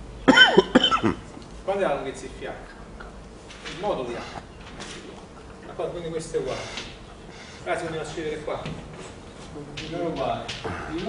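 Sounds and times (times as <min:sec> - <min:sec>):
person coughing: 0:00.3 - 0:01.2.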